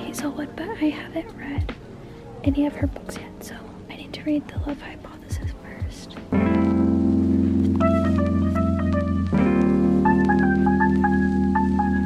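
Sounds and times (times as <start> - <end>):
deep beats: 0.0 - 3.5, 4.5 - 12.0
faint background music: 0.0 - 12.0
person whispering: 2.8 - 6.2.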